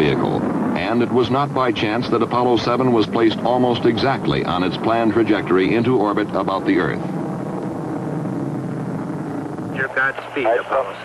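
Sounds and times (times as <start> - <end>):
voice over radio: 0.0 - 7.0, 9.8 - 11.0
rocket engines roaring: 0.0 - 11.0.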